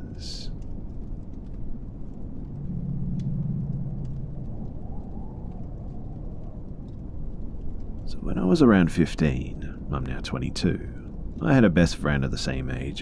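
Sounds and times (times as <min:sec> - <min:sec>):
low rumbling ambience: 0:00.0 - 0:13.0.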